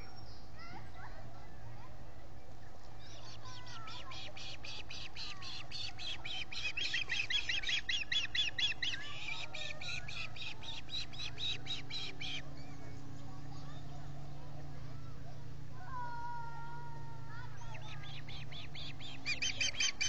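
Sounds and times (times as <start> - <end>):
ospreys chirping: 3.6 - 12.4, 17.7 - 20.0.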